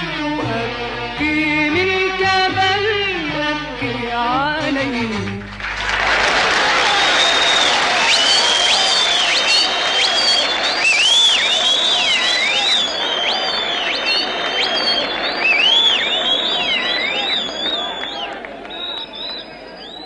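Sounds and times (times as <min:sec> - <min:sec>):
audience applauding: 0:05.2 - 0:20.0
audience cheering: 0:05.7 - 0:20.0
shrill gliding whistles: 0:06.8 - 0:20.0.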